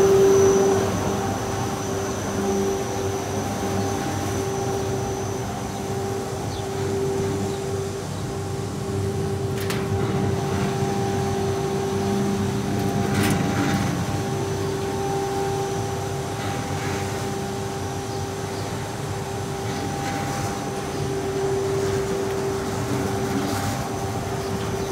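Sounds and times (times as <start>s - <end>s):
machine motor and vacuum hum: 0.0s - 24.9s.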